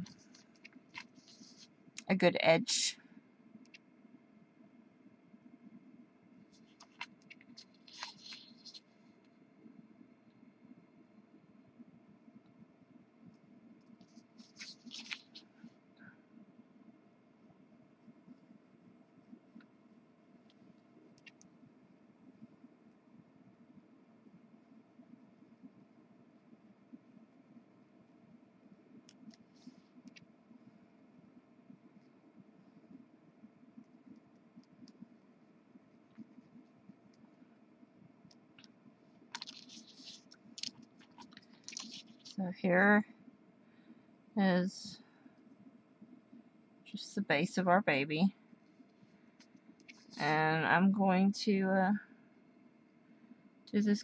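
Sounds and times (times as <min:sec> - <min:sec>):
low room hum: 0:00.0 - 0:54.0
marker scratching on paper: 0:01.0 - 0:01.7, 0:06.6 - 0:08.8, 0:14.0 - 0:15.4, 0:39.4 - 0:42.4.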